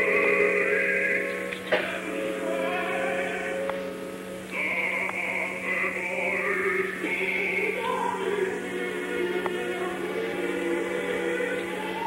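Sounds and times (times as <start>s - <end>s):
opera singing with orchestra: 0.0s - 12.0s
steady hum: 0.0s - 12.0s.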